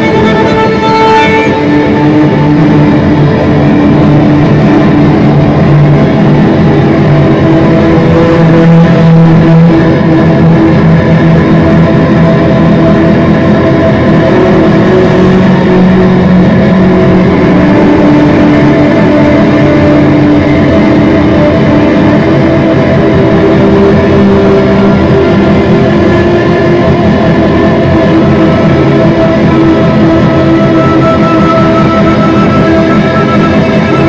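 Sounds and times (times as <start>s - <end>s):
droning processed violin: 0.0s - 34.0s.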